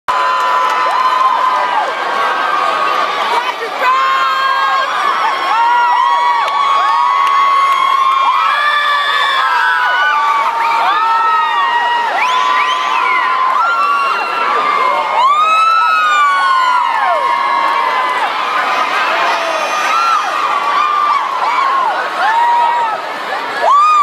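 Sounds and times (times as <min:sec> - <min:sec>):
crowd cheering and screaming: 0:00.1 - 0:24.0.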